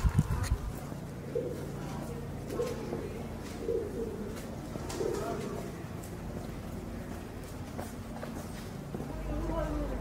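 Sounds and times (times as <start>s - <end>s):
pigeon cooing: 1.2s - 5.7s.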